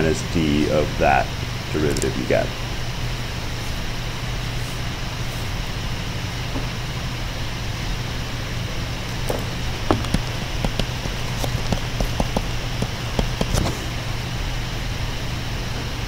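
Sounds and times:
electrical hum and hiss: 0.0 - 16.0
stylus tapping on tablet screen: 9.9 - 13.7.

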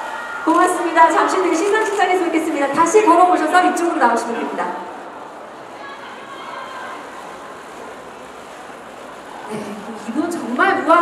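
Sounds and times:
crowded venue background hiss: 0.0 - 11.0.

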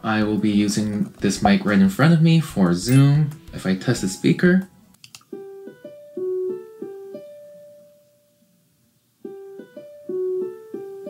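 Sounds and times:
plucked piano-like melody: 2.7 - 7.9, 9.3 - 11.0.

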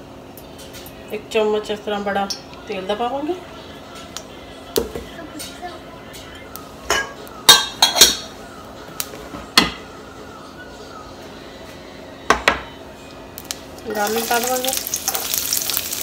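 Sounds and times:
dishes and utensils clinking: 4.9 - 8.3.

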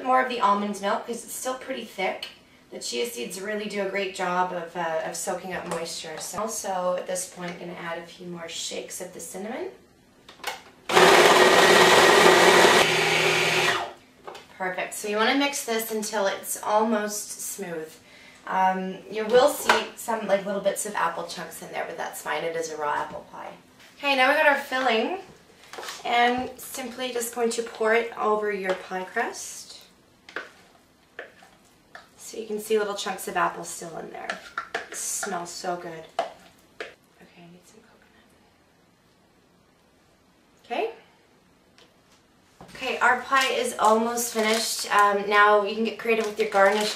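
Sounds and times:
food processor motor running: 10.9 - 13.9.

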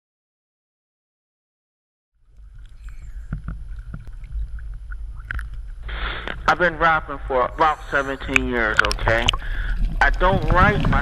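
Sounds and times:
wind buffeting microphone: 2.4 - 11.0
small knocks and clicks: 2.6 - 5.7.

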